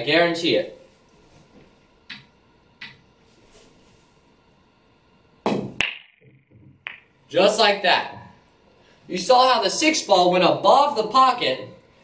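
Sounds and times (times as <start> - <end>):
pool balls cracking and clattering: 5.4 - 7.2.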